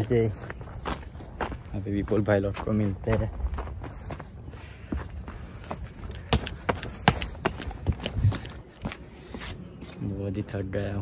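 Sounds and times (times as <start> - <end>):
footsteps walking: 0.0 - 10.2
wind rumble on microphone: 7.1 - 8.7.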